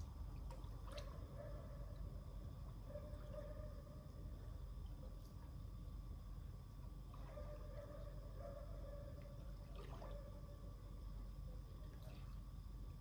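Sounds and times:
faint swimming water sounds: 0.0 - 13.0
steady low hum: 0.0 - 13.0.

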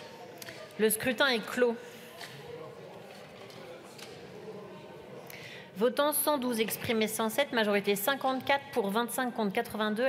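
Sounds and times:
murmur of many voices: 0.0 - 10.0.

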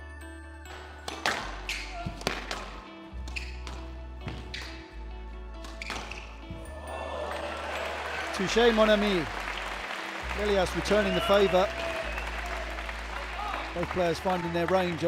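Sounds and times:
background music with deep bass: 0.0 - 15.0
applause: 6.9 - 15.0.

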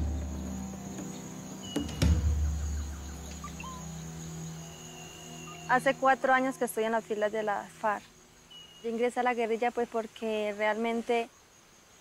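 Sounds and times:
insects droning: 0.0 - 12.0
thump: 1.7 - 2.6.

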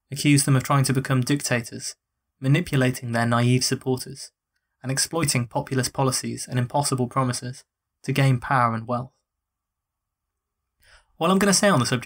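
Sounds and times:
person speaking: 0.0 - 9.1, 11.2 - 12.0
short in-breath: 10.8 - 11.2.

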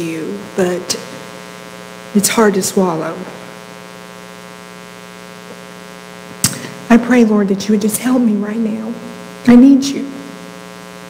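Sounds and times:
woman speaking: 0.0 - 1.2, 2.2 - 3.3, 6.9 - 10.3
electrical mains hum with buzz: 0.0 - 11.0.

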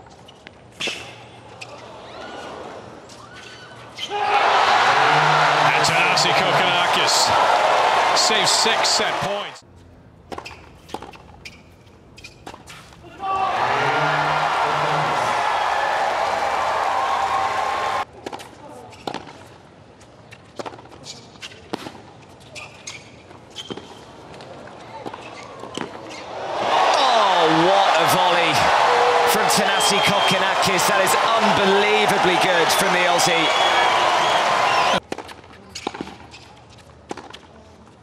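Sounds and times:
crowd cheers and shouts: 4.1 - 9.6, 13.2 - 18.0, 26.3 - 35.0
crowd cheering and applauding: 4.2 - 9.6, 13.4 - 18.0, 26.5 - 35.0.

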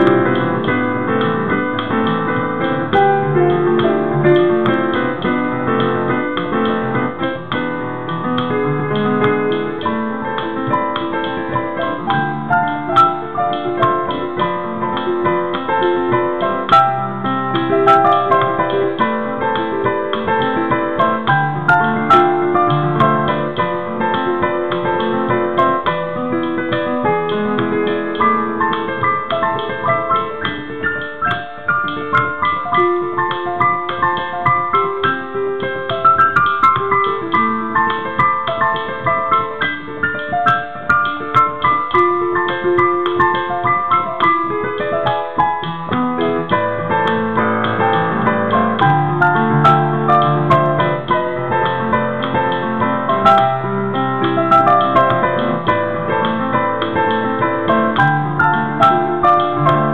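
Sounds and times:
digital piano melody: 0.0 - 59.9
piano bass chords: 0.0 - 59.9.

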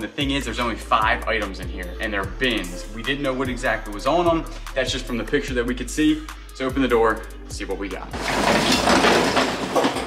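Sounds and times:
metal roll-up door rattling: 8.2 - 10.0.

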